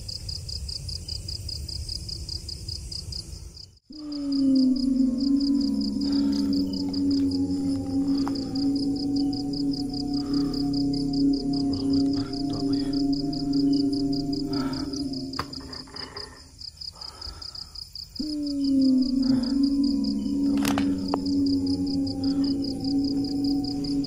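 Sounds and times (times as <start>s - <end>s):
insects chirping: 0.0s - 24.0s
eerie ambient drone music: 3.9s - 16.5s, 18.2s - 24.0s.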